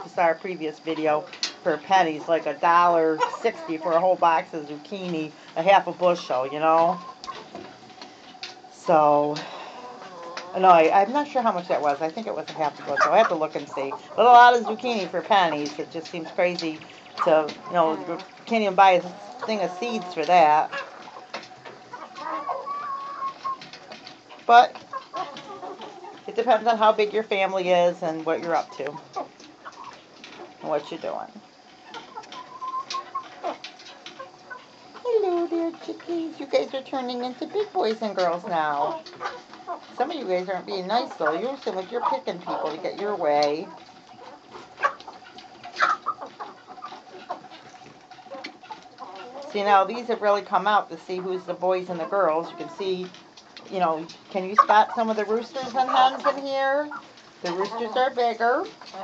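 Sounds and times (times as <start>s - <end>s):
chickens making soft calls: 1.7s - 59.0s.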